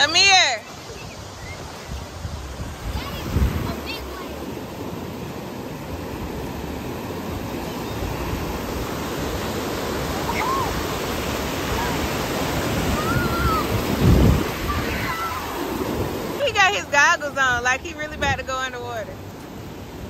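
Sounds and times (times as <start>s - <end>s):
ocean surf breaking: 0.0s - 20.0s.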